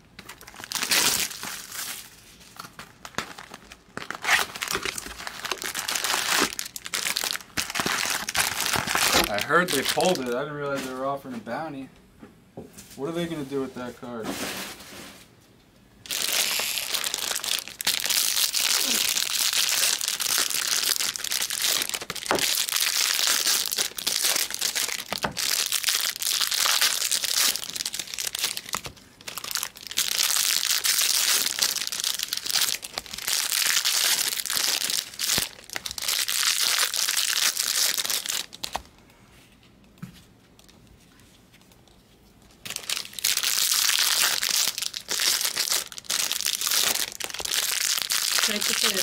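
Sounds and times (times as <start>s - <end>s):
foil wrappers crinkling: 0.2s - 11.0s, 16.0s - 38.9s, 41.6s - 49.0s.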